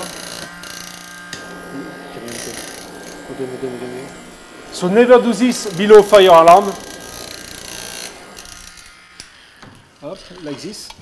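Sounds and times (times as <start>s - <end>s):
small fan motor whirring: 0.0s - 11.0s.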